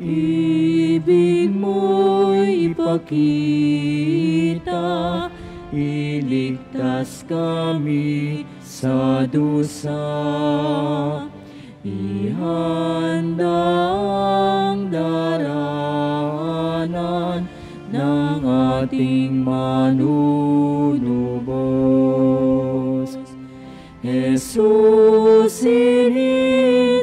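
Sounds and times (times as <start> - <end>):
slow hymn music: 0.0 - 27.0.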